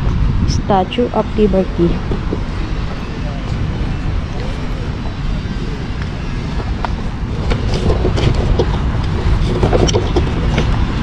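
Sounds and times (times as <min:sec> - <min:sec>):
distant city traffic rumble: 0:00.0 - 0:11.0.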